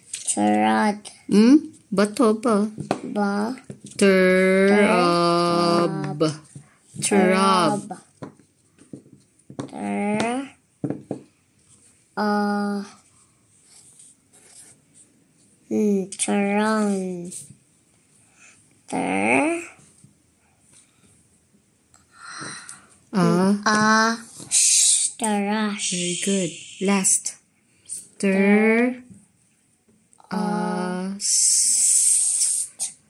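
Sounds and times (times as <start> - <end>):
person sounding out a word: 3.2 - 6.4, 7.0 - 8.0
voice holding a vowel: 4.1 - 6.4, 7.0 - 8.0.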